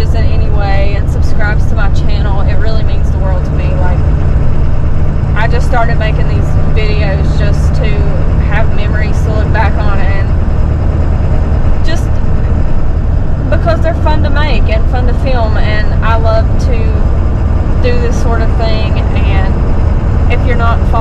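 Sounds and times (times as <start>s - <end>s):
voices talking: 0.0s - 4.2s, 5.3s - 10.4s, 11.9s - 12.7s, 13.4s - 17.1s, 17.8s - 19.6s, 20.3s - 21.0s
car engine drone: 0.0s - 21.0s
road noise: 0.0s - 21.0s.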